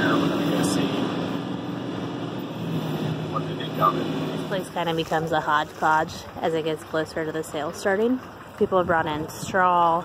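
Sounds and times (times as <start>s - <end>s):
road noise: 0.0s - 10.0s
truck engine drone: 0.0s - 10.0s.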